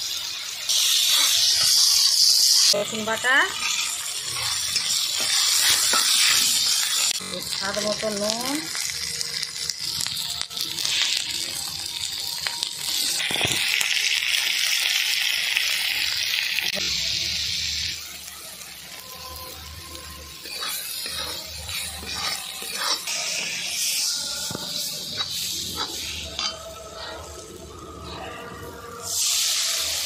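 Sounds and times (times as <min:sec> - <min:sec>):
paste sizzling in oil: 0:00.0 - 0:30.0
spatula stirring: 0:00.7 - 0:07.2, 0:20.3 - 0:29.3.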